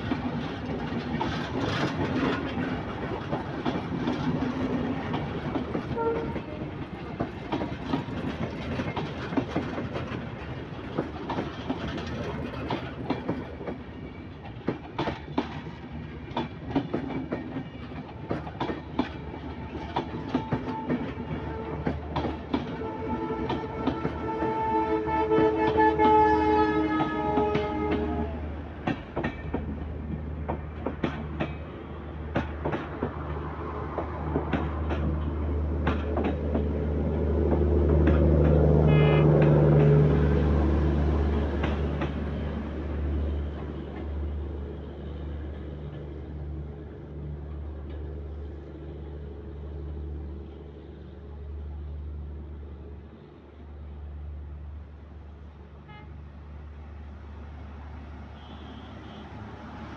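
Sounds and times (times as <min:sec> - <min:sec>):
train rumble: 0:00.0 - 0:59.9.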